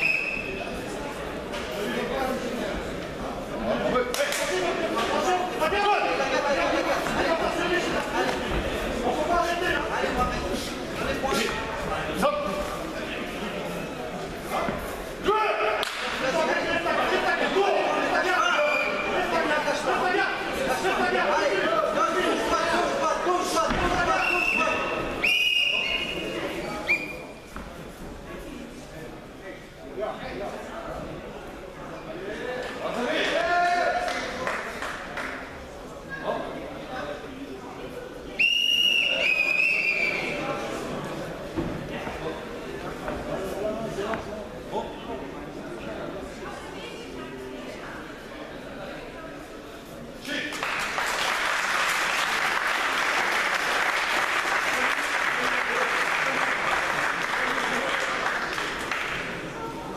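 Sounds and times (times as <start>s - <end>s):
referee's whistle blasts: 0.0s - 0.6s, 24.2s - 27.2s, 38.4s - 40.4s
murmur of crowd: 0.0s - 59.9s.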